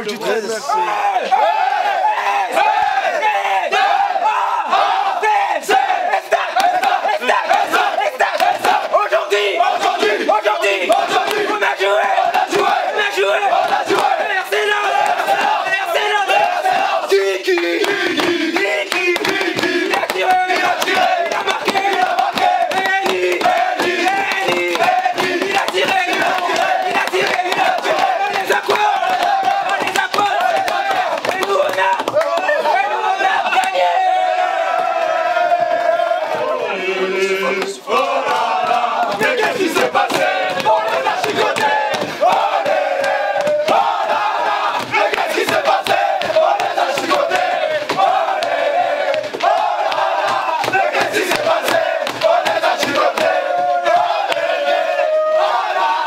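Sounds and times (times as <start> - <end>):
group chanting and shouting: 0.0 - 56.0
sharp slaps: 16.7 - 32.5, 37.6 - 43.9, 44.6 - 53.4.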